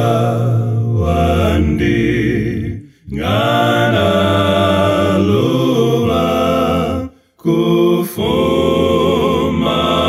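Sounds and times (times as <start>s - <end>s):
male a cappella hymn harmony: 0.0s - 10.0s.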